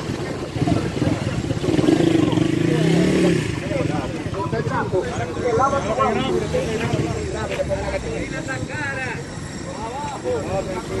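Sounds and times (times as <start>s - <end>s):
crowd talking: 0.0s - 11.0s
motorcycle engines idling: 0.0s - 11.0s.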